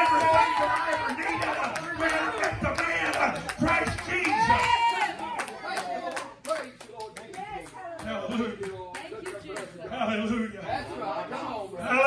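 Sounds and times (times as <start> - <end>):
hands clapping rhythmically: 0.0 - 9.8.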